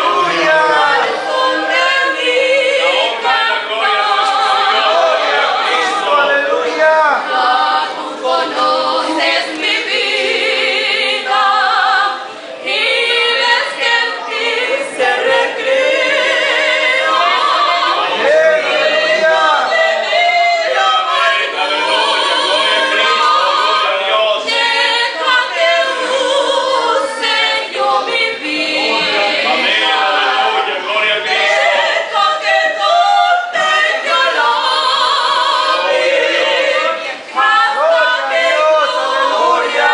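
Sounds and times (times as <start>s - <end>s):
two women singing a hymn: 0.0s - 39.9s.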